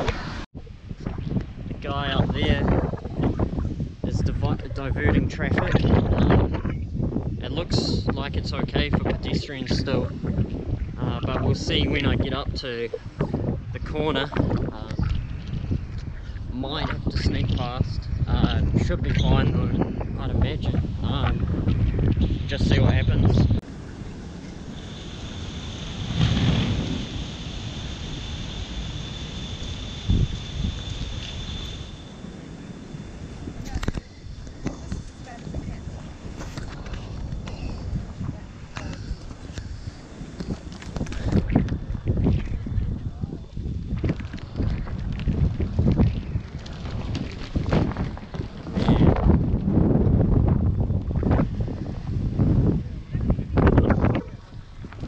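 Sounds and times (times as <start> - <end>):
faint high whine: 0.0 - 55.0
low outdoor rumble: 0.0 - 55.0
wind buffeting microphone: 0.0 - 55.0.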